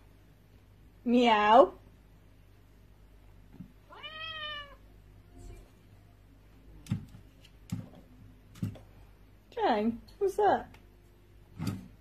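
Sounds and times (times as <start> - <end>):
recorded cat meow from speaker: 3.9 - 4.8.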